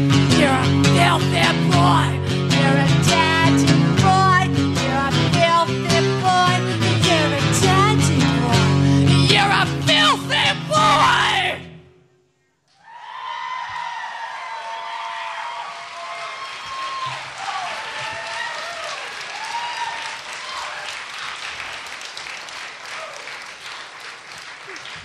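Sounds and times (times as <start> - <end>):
live band with electric guitar: 0.0 - 11.9
audience applauding and cheering: 12.7 - 25.0.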